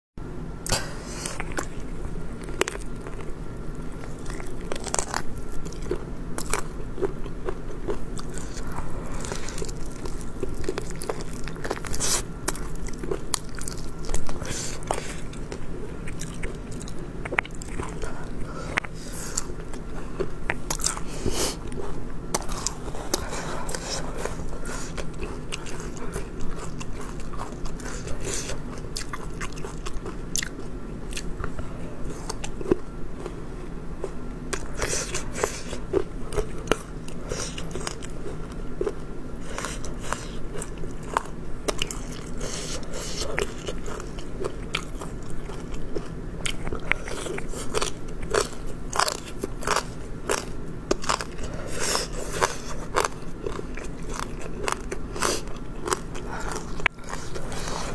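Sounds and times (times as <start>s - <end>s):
chewing and biting: 0.6s - 57.9s.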